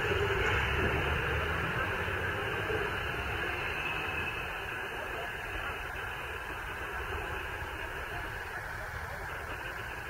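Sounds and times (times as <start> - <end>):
cars driving past: 0.0 - 5.3.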